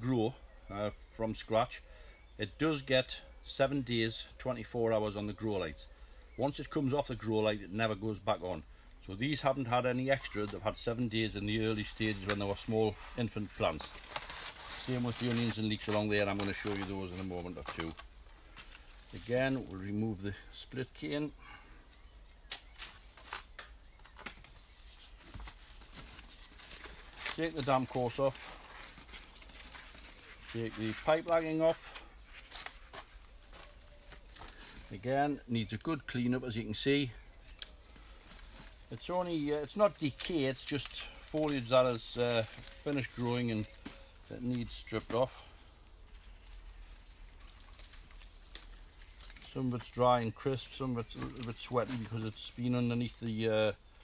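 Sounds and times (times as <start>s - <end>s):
light ticks and rustles: 11.8s - 21.1s, 37.4s - 54.0s.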